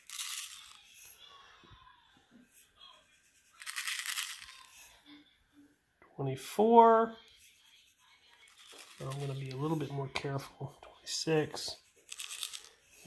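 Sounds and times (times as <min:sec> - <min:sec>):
salt grains pouring onto plastic: 0:12.1 - 0:12.7.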